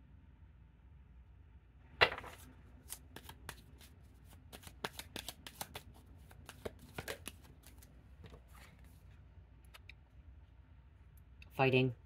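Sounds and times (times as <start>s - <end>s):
cards shuffling clicks: 2.1s - 8.7s.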